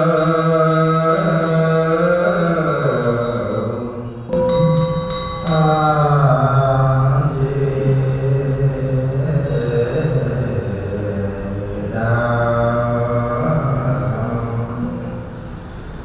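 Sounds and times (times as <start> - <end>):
bell ringing: 0.0 - 7.1
ritual percussion strikes: 0.0 - 7.9
monks chanting: 0.0 - 15.6.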